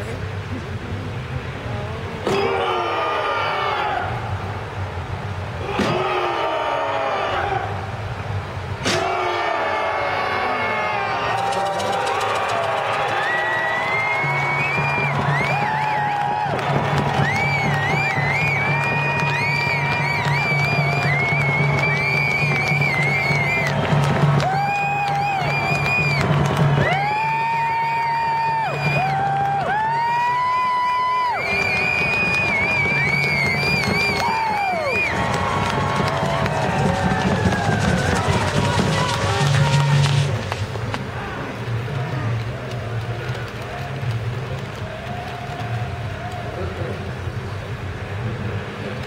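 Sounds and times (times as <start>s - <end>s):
group giving ceremonial cries: 1.5s - 48.8s.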